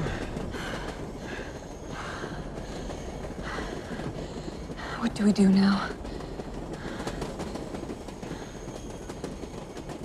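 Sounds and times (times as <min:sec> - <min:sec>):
person breathing hard: 0:00.0 - 0:05.0, 0:06.0 - 0:08.9
train rumbling on rails: 0:00.0 - 0:10.0.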